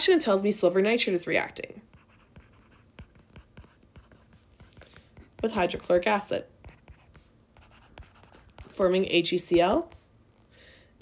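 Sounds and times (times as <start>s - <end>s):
stylus writing on tablet screen: 1.8s - 10.0s.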